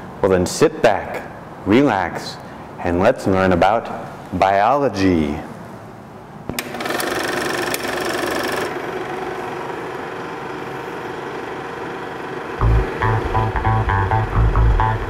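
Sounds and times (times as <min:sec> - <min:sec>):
film projector whirring: 0:06.5 - 0:13.7
music with bass and plucked guitar: 0:12.6 - 0:15.0.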